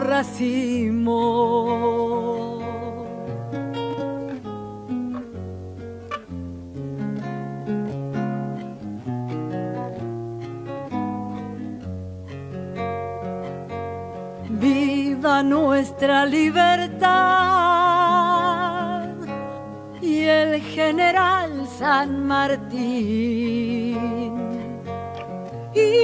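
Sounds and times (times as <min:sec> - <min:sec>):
woman singing: 0:00.0 - 0:03.6, 0:14.4 - 0:26.0
acoustic guitar playing: 0:00.0 - 0:26.0.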